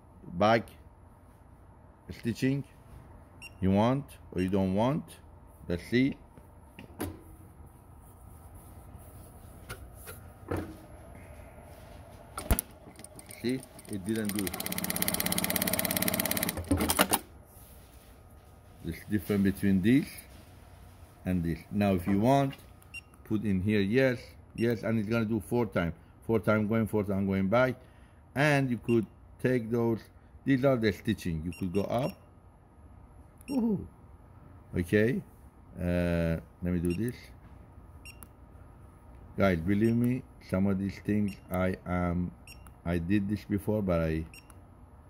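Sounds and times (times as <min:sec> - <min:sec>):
sewing machine stitching: 0:13.0 - 0:17.2.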